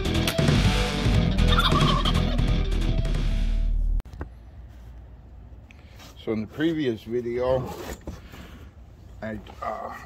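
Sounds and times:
loud background music: 0:00.0 - 0:03.8.

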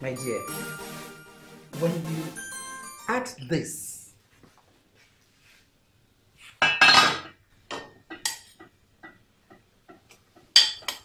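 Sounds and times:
metal pots clattering: 0:06.6 - 0:11.0.

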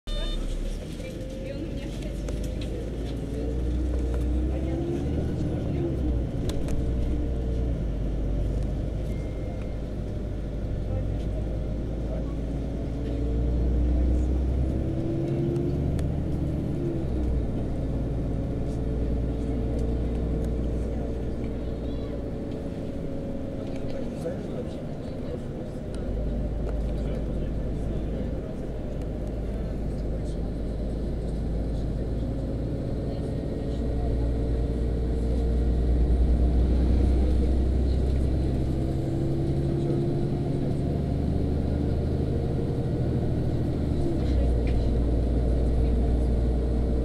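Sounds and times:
bus engine rumble: 0:00.0 - 0:47.0
bus drivetrain whine: 0:00.1 - 0:47.0.

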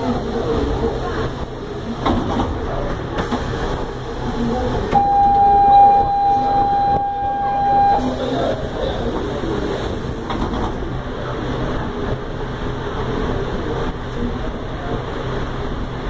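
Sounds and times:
murmur of passengers: 0:00.0 - 0:16.0
train interior noise: 0:00.0 - 0:16.0
door warning buzzer: 0:05.0 - 0:08.1.

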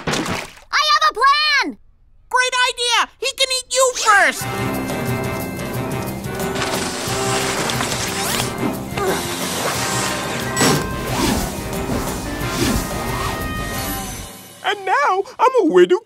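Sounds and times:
fast cartoon chase music: 0:04.3 - 0:15.2
sliding and crashing sound effects: 0:06.3 - 0:14.2.

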